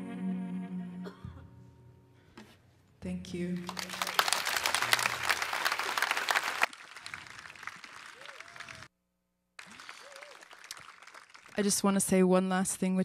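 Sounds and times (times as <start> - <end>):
audience applauding: 3.6 - 8.9, 9.6 - 11.7.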